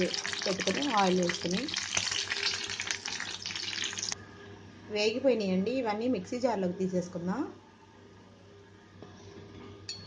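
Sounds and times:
spices sizzling in hot oil: 0.0 - 4.2.

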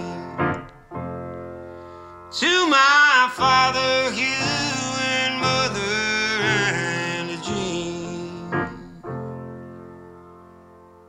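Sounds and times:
man singing: 0.0 - 0.7, 2.3 - 9.4
piano: 0.0 - 11.0.

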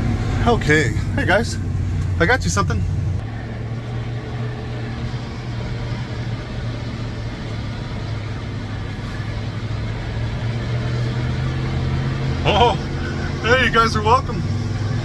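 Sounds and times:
truck engine humming: 0.0 - 15.0.

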